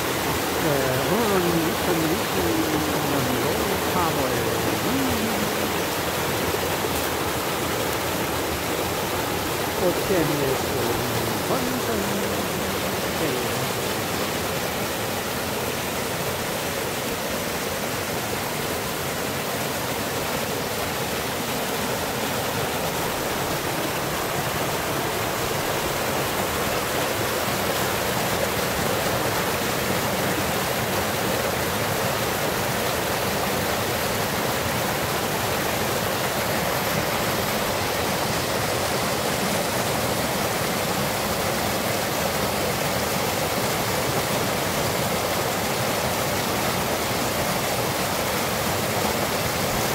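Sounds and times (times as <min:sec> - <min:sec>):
stream rushing over boulders: 0:00.0 - 0:49.9.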